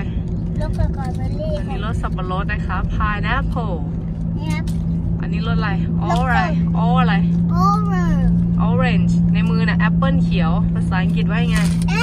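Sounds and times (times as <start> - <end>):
car interior hum and rumble: 0.0 - 12.0.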